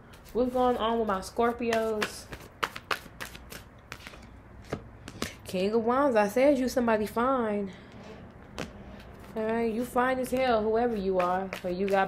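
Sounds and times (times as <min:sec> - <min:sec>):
cards being shuffled: 0:00.1 - 0:05.4.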